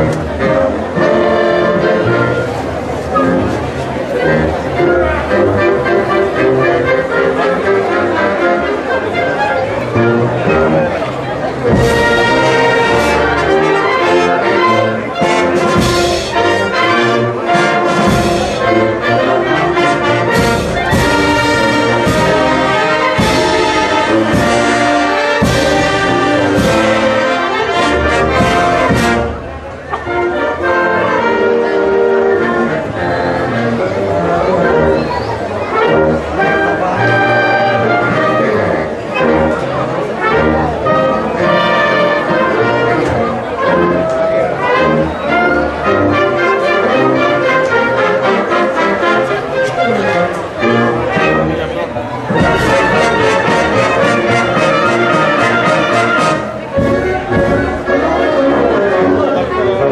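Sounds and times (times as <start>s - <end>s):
wind band playing: 0.0s - 59.9s.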